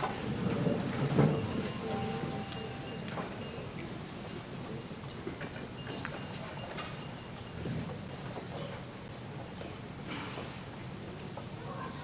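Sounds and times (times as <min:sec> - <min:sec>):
faint murmur of people: 0:00.0 - 0:12.0.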